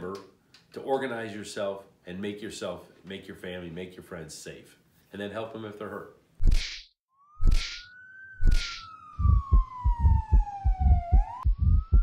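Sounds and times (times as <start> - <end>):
electronic siren wail: 7.1 - 12.0
fast low drum beats: 9.2 - 12.0.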